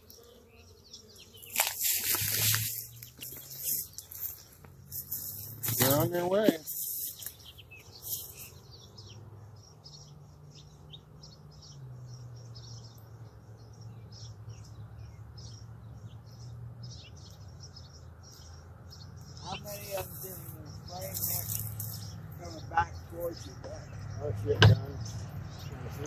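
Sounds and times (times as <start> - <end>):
small songbirds chirping: 0.0 - 26.0.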